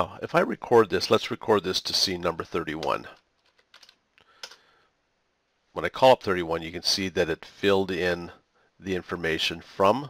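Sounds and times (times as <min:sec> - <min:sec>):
faint keyboard keystrokes: 0:02.8 - 0:04.7.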